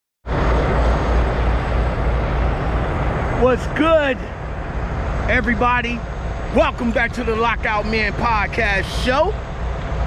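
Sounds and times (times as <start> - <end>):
vehicle interior rumble: 0.3 - 10.0.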